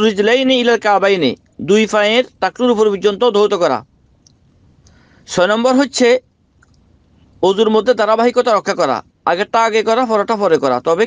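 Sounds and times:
man speaking: 0.0 - 3.8, 5.3 - 6.2, 7.4 - 11.0.

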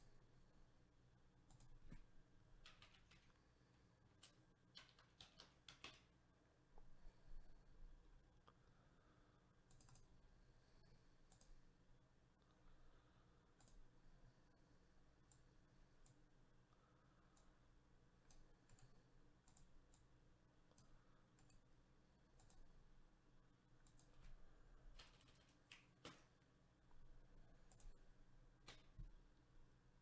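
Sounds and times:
computer mouse clicks: 1.4 - 3.5, 4.1 - 6.2, 9.6 - 10.2, 11.2 - 11.7, 13.5 - 14.0, 15.2 - 16.3, 17.3 - 17.6, 18.2 - 21.7, 22.3 - 22.8, 23.8 - 26.4, 27.6 - 29.2.

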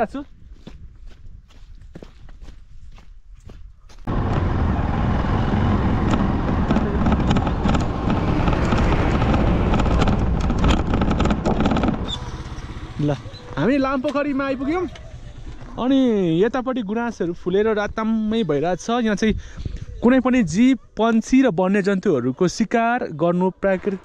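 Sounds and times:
bus engine running: 4.1 - 15.8.

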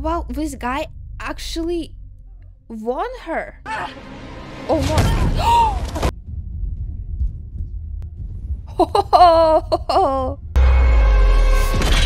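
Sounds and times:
low pulsing soundtrack rumble: 0.0 - 12.0.

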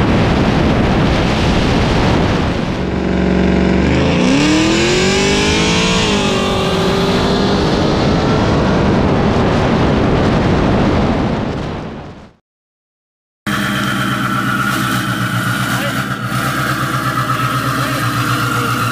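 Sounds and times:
car engine at full throttle: 0.0 - 12.0, 13.5 - 18.9
wind rush: 0.0 - 12.4.

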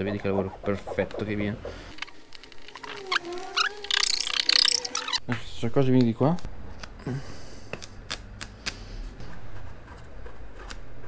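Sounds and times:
vinyl film crackling and rustling: 1.9 - 4.7.

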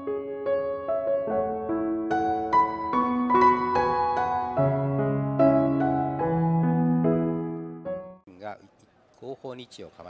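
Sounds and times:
piano note: 0.0 - 8.2.

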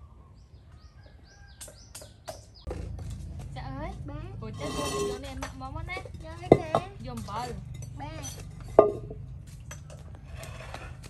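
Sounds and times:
small birds chirping: 0.0 - 2.8
low steady rumble: 2.7 - 10.9.

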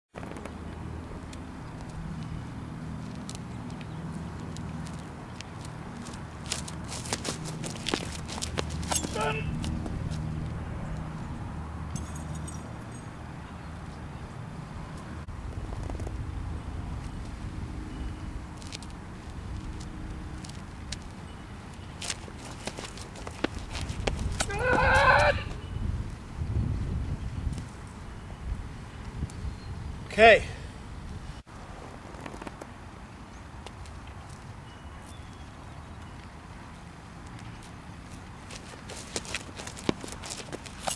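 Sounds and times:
shoes scuffing on concrete: 1.8 - 11.2, 21.8 - 25.6, 37.2 - 40.9
person shouting: 9.1 - 9.6, 24.4 - 25.6
man yelling: 9.2 - 9.6, 24.5 - 25.5, 30.1 - 30.6.

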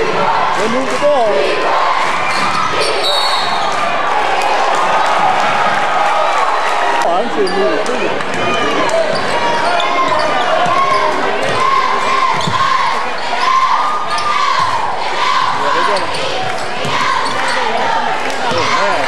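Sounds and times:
crowd murmur: 0.0 - 19.0
sneakers squeaking: 2.1 - 3.8, 7.3 - 18.8.

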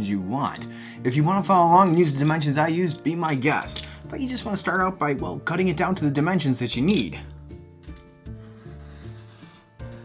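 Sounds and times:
soft background music: 0.0 - 10.0
pencil scratching on poster board: 8.3 - 10.0.

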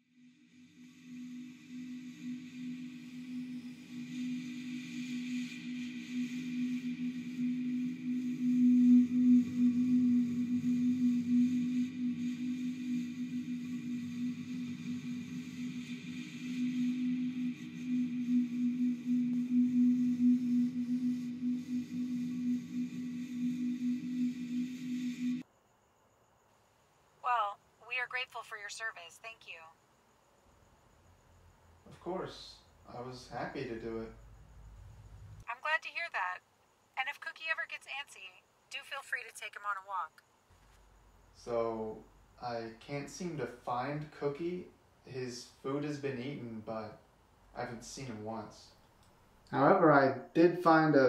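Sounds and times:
airy hiss: 0.0 - 25.4, 31.9 - 34.2, 41.2 - 47.0, 47.6 - 48.8
low humming drone: 0.0 - 25.4.

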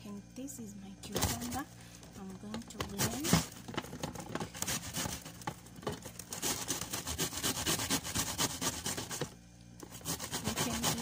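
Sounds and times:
knife cutting cucumber: 4.5 - 11.0.

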